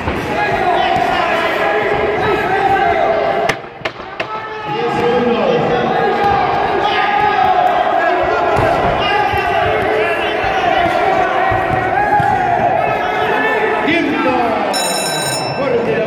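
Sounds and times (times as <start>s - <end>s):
crowd shouting and yelling: 0.0s - 16.0s.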